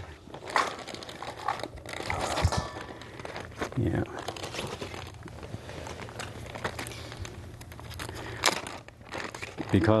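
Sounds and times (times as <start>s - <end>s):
plastic bag crinkling: 0.0s - 10.0s
vegetables dropping into metal bowl: 2.1s - 2.9s.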